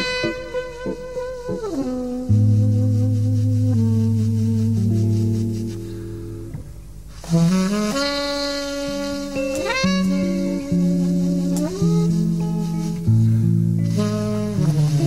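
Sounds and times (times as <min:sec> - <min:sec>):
bass: 0:00.0 - 0:15.0
keyboard chords: 0:00.0 - 0:15.0
tenor saxophone long notes: 0:00.0 - 0:15.0.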